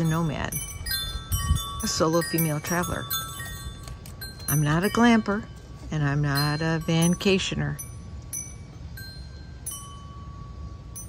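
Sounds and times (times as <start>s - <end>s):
wind rumble on microphone: 0.0s - 10.1s
wind chimes ringing: 0.0s - 11.0s.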